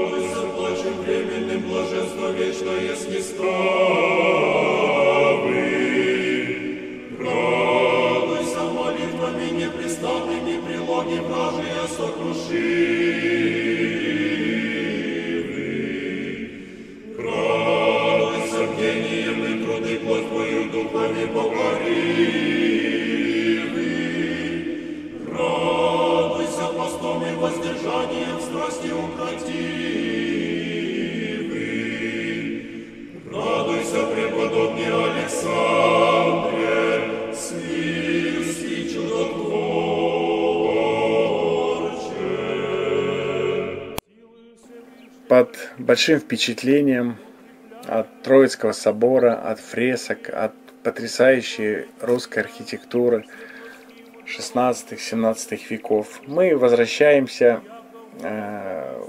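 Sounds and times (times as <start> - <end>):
church choir singing a chant: 0.0 - 59.0.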